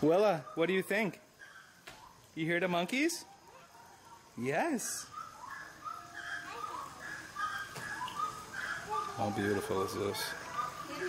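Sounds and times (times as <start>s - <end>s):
monkeys calling: 0.0s - 11.0s.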